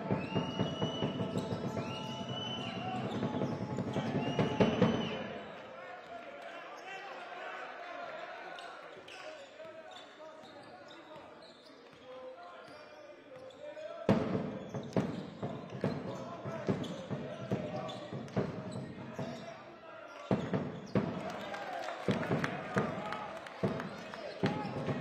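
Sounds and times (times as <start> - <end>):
voices of players and spectators: 0.0 - 25.0.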